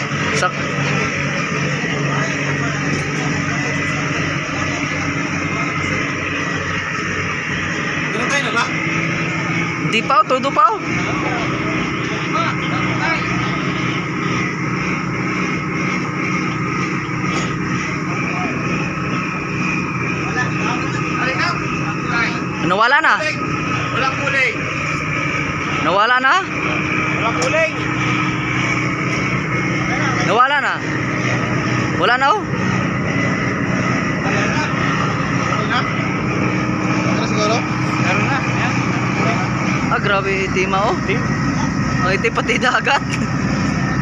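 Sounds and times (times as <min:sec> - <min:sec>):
ferry diesel engines droning: 0:00.0 - 0:44.0.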